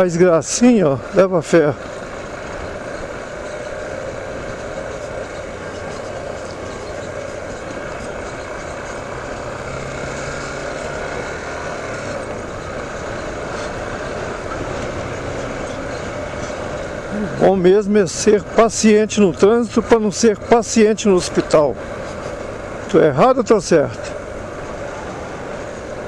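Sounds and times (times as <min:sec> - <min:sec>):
motorcycle engine: 0:00.0 - 0:26.0.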